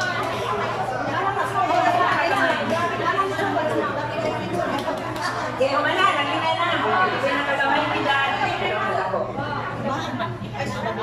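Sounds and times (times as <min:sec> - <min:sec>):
overlapping conversational chatter: 0:00.0 - 0:11.0.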